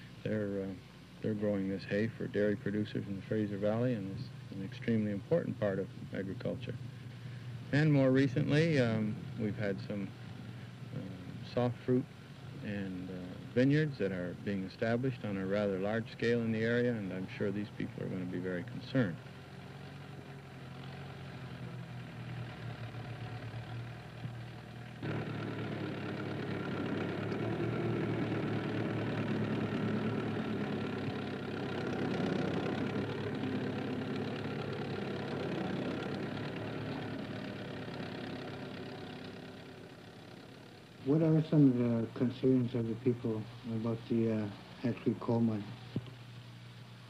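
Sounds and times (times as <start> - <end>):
tractor engine running: 15.0 - 44.8.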